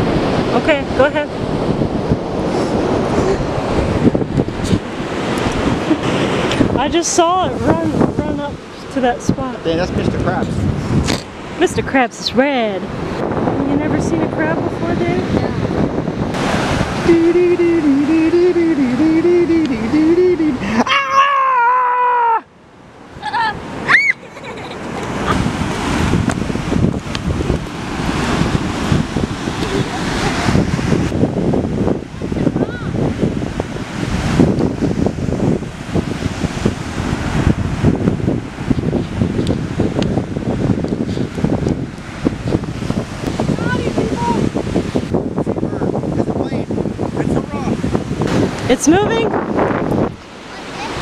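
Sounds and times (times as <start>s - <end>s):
surf breaking: 0.0s - 11.8s, 12.8s - 22.3s, 23.0s - 51.0s
wind buffeting microphone: 0.0s - 20.8s, 22.0s - 51.0s
person humming: 17.0s - 22.5s.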